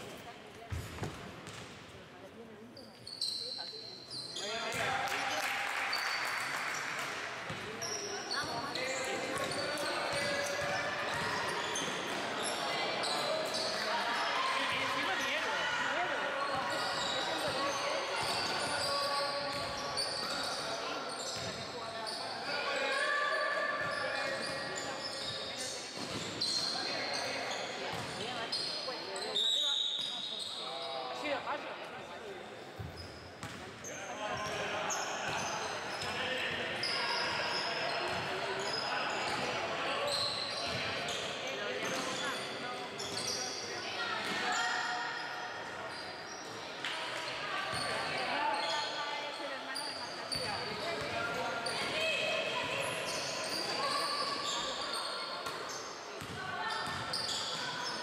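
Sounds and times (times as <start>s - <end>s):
sneakers squeaking on floor: 0.0s - 1.9s, 2.5s - 4.9s, 5.8s - 31.4s, 32.6s - 58.0s
players' voices and shouts: 7.6s - 31.7s
ball bouncing on wooden court: 32.8s - 33.6s, 56.2s - 57.2s.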